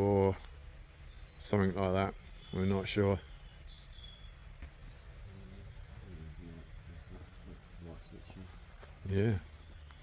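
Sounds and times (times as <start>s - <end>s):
high bird chirps: 0.9s - 10.0s.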